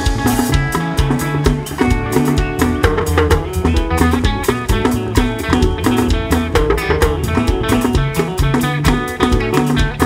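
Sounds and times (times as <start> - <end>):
bass lines: 0.0 - 10.0
drum kit beat: 0.0 - 10.0
electric guitar: 0.0 - 10.0
hand drum: 0.0 - 10.0.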